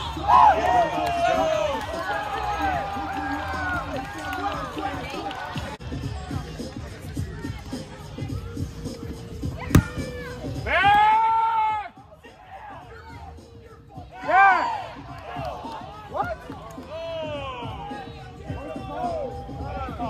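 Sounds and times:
kickball being kicked: 9.6 - 10.1.

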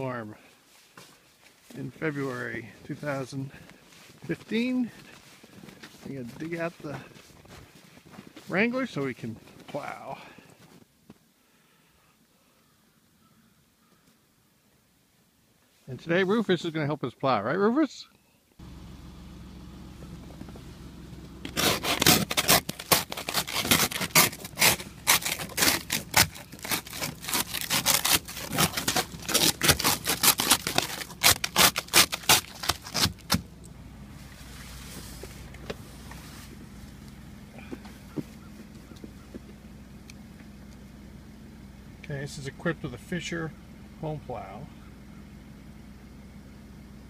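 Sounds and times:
vehicle engine idling: 0.0 - 10.8, 18.6 - 47.0
ice scraper scraping window ice: 21.4 - 33.4.

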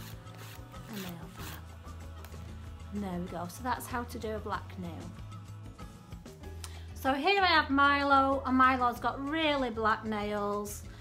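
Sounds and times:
nail file scraping toenail: 0.0 - 1.7
background music: 0.0 - 11.0.

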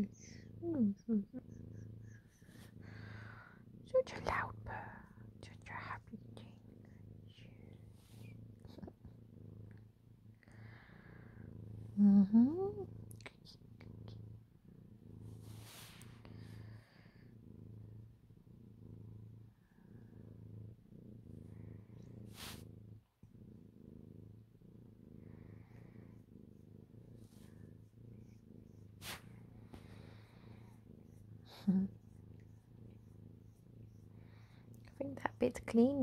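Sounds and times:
cat purring: 0.0 - 36.0.

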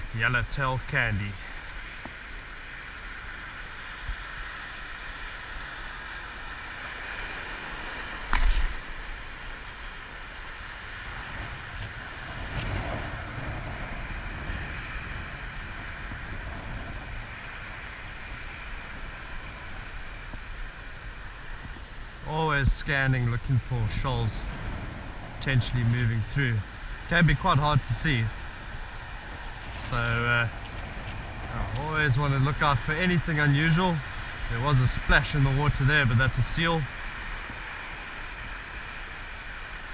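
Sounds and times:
outdoor background hiss: 0.0 - 39.9.

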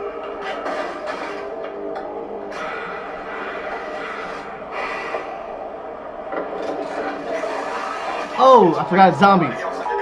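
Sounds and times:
noisy ambience: 0.0 - 10.0.

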